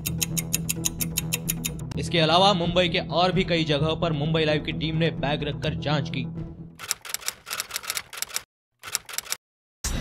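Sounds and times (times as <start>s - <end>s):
fast clock ticking: 0.0s - 1.8s, 6.8s - 9.4s.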